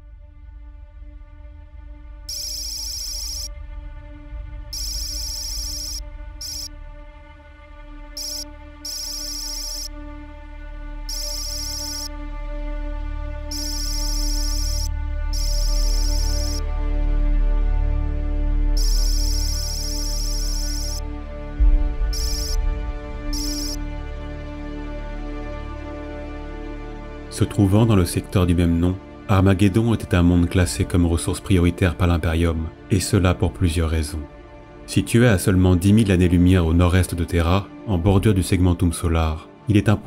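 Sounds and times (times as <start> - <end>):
low ambient music drone: 0.0 - 36.8
high electronic chirping trill: 2.3 - 3.5, 4.8 - 6.7, 8.2 - 9.9, 11.1 - 12.1, 13.5 - 16.6, 18.8 - 21.0, 22.1 - 22.6, 23.3 - 23.8.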